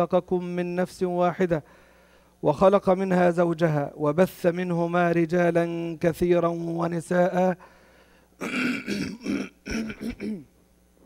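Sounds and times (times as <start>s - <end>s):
man clearing his throat: 8.4s - 10.5s.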